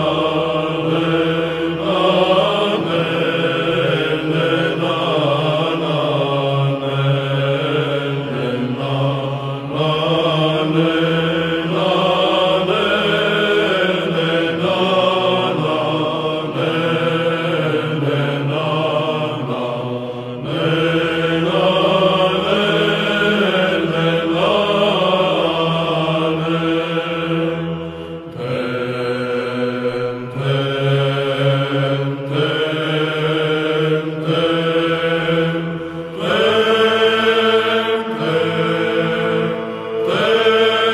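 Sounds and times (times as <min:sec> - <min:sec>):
held vocal drone: 0:00.0 - 0:40.9
male choir chanting: 0:00.0 - 0:40.9.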